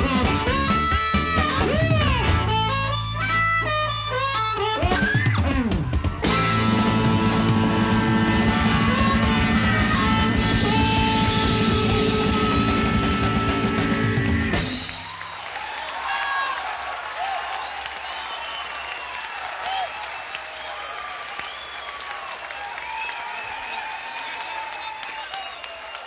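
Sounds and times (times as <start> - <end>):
audience applauding and cheering: 5.0 - 26.0
band playing final chord: 6.2 - 15.0
whistles from audience: 14.7 - 26.0.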